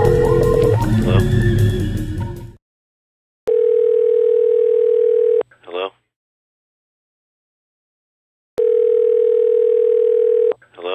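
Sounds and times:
telephone dial tone: 3.5 - 5.4, 8.6 - 10.6.

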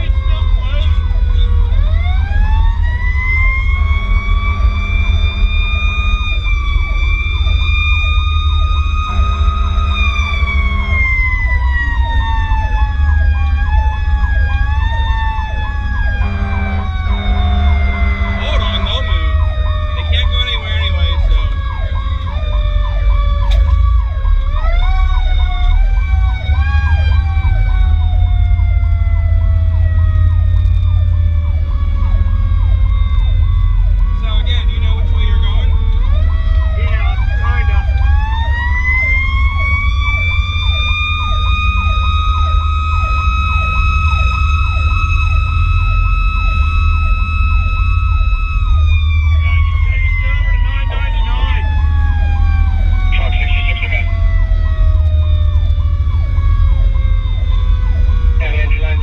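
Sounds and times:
electronic siren yelping: 0.0 - 59.0
mechanical siren wailing: 0.0 - 59.0
wind and road noise: 0.0 - 59.0.

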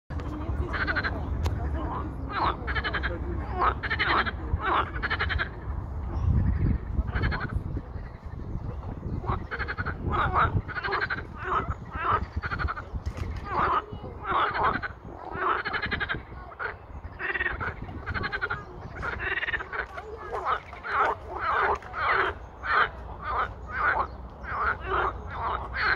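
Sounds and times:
frogs croaking: 0.3 - 25.9.

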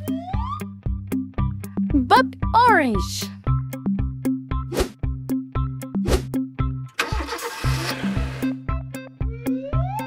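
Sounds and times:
car engine starting sound effect: 6.9 - 8.6.

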